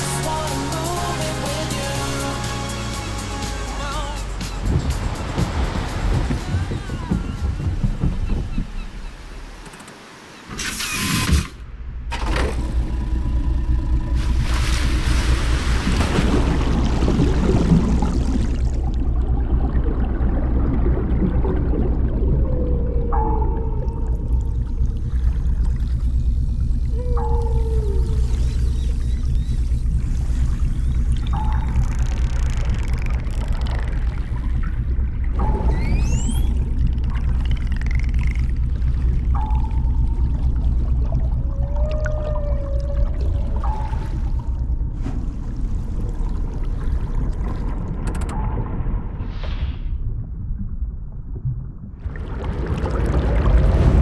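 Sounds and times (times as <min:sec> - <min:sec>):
rushing water: 0:00.0 - 0:11.0, 0:14.0 - 0:49.4, 0:52.0 - 0:54.0
steady low rumble: 0:11.6 - 0:54.0
sudden splash: 0:14.0 - 0:22.5, 0:52.0 - 0:54.0
gliding whale-like calls: 0:21.5 - 0:47.5.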